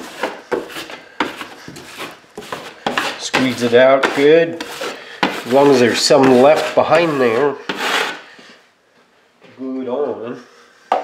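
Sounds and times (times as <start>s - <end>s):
putty knife scraping drywall: 0.0s - 8.6s.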